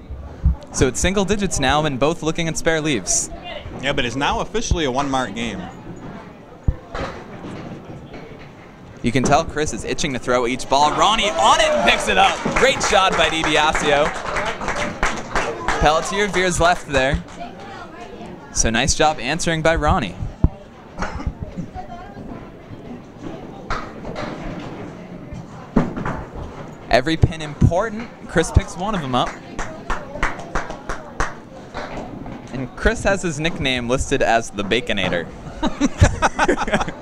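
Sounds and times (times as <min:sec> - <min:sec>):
crowd talking: 0:00.0 - 0:37.0.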